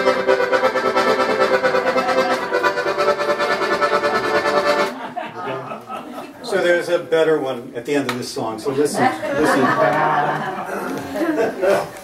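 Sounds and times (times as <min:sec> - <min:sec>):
accordion bellows shake chords: 0:00.0 - 0:05.0.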